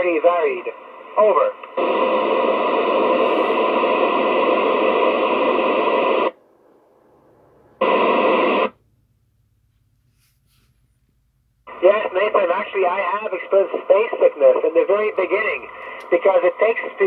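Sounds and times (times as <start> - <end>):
radio static hiss: 0.0 - 6.4, 7.8 - 8.8, 11.7 - 17.0.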